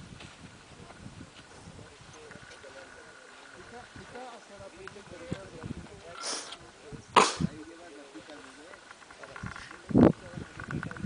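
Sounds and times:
wind buffeting microphone: 0:00.0 - 0:07.9, 0:09.0 - 0:11.0.

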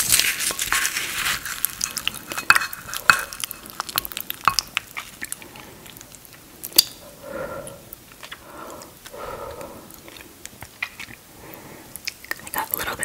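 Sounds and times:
wet sticky squelches of food: 0:00.1 - 0:12.8.

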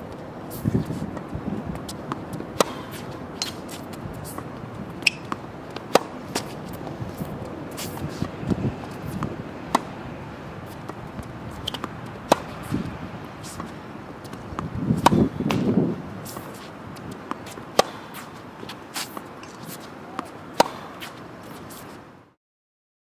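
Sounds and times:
tennis ball bouncing: 0:00.1 - 0:22.0
tennis racquet hitting ball: 0:01.8 - 0:10.0, 0:10.6 - 0:21.9.

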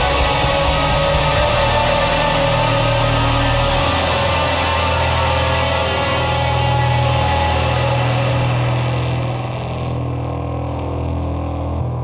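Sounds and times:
dissonant metal music: 0:00.0 - 0:12.0
heavy low drone: 0:00.0 - 0:12.0.

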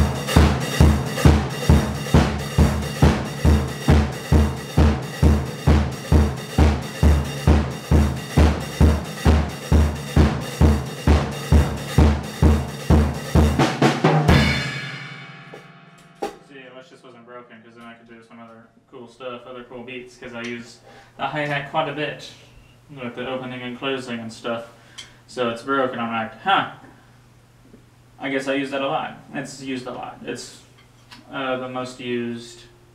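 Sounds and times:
cymbals ringing: 0:00.0 - 0:16.3
bass drum: 0:00.0 - 0:16.4
snare drum: 0:00.0 - 0:16.5.

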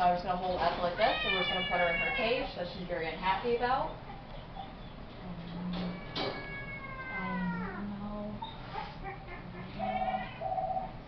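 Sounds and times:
cat meowing: 0:01.0 - 0:02.4, 0:05.8 - 0:07.8, 0:09.8 - 0:10.9
cat yowling: 0:05.8 - 0:07.8, 0:08.8 - 0:10.9.

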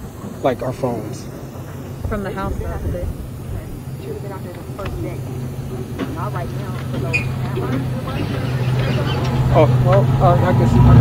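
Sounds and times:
faint indistinct voices: 0:00.0 - 0:11.0
vehicle engine humming: 0:00.0 - 0:11.0.

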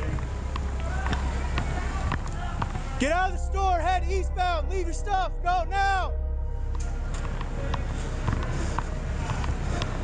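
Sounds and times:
faint music: 0:00.0 - 0:10.0
low rumble: 0:00.0 - 0:10.0.

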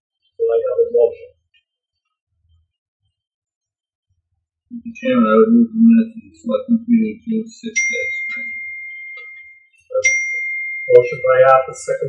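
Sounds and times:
high bell-like ding: 0:07.8 - 0:11.8.

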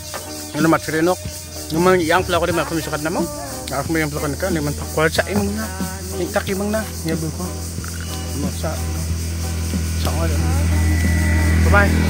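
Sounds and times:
steady background hiss: 0:00.0 - 0:11.8
man talking: 0:00.5 - 0:07.6, 0:08.3 - 0:09.0.

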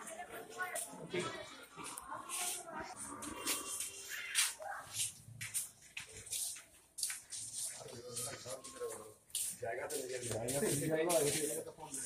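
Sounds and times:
background voices talking: 0:00.0 - 0:06.7, 0:07.4 - 0:12.0.

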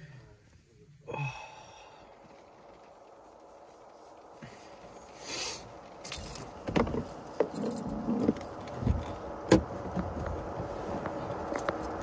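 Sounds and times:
rattling and knocks inside car: 0:06.2 - 0:11.9.

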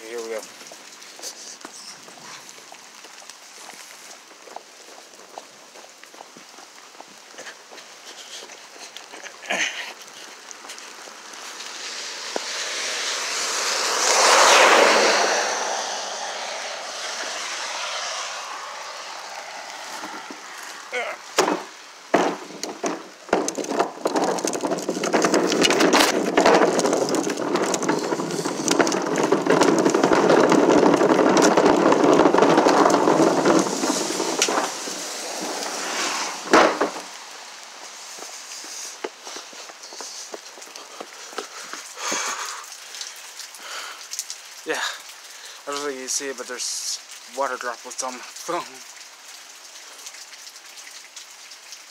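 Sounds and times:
heavy rain hissing: 0:00.0 - 0:51.9
raindrops crackling: 0:00.0 - 0:51.9.

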